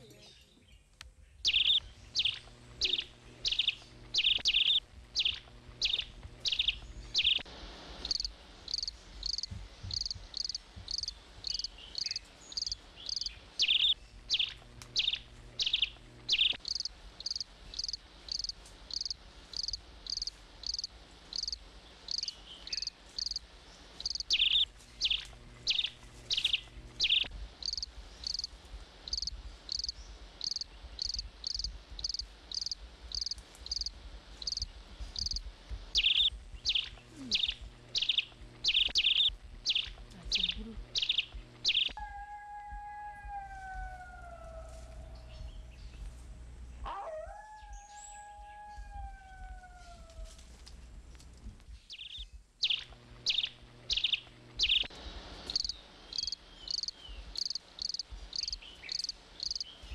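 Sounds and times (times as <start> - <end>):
insect chirping: 1.5 - 42.0, 51.9 - 54.9, 55.5 - 59.8.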